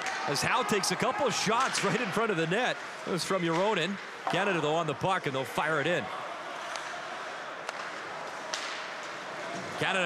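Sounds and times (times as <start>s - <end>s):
arena background noise: 0.0s - 10.0s.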